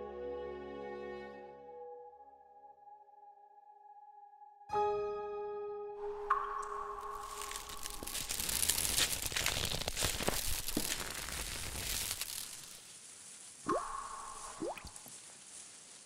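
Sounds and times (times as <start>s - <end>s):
dense crackling rustling noise: 6.4s - 16.0s.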